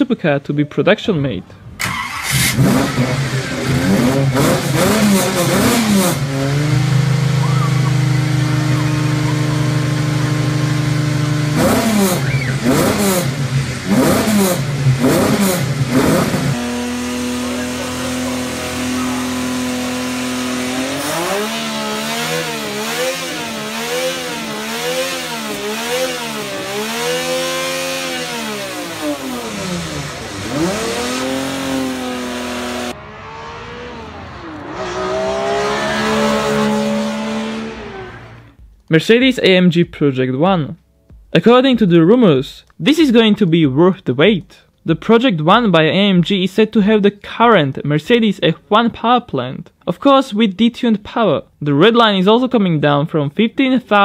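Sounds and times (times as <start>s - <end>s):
engine revving in sharp blips: 1.7s - 38.8s.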